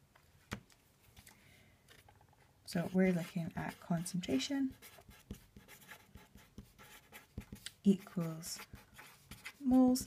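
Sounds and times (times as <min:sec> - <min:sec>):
pen scratching on paper: 0:02.7 - 0:10.0.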